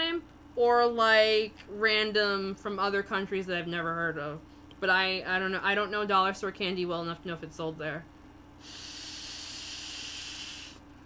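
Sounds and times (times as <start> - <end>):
person blowing into ball valve: 8.6 - 10.8.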